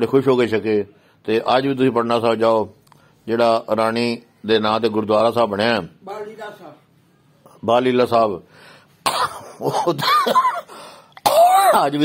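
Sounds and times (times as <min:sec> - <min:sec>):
man speaking: 0:00.0 - 0:06.9, 0:07.5 - 0:08.5, 0:11.5 - 0:12.0
man coughing: 0:09.0 - 0:12.0.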